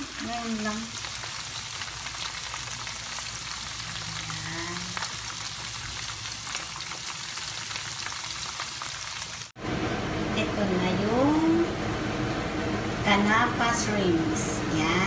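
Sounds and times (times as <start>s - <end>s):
shrimps frying in oil: 0.0s - 9.5s.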